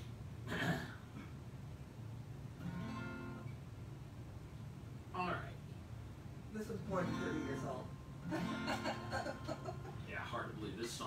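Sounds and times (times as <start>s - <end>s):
acoustic guitar chords: 2.6s - 3.6s, 6.9s - 10.0s.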